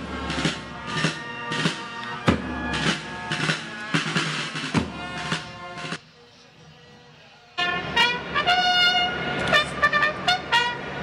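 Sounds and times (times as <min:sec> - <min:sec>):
trumpet fanfare: 0:00.0 - 0:06.0, 0:07.6 - 0:11.0.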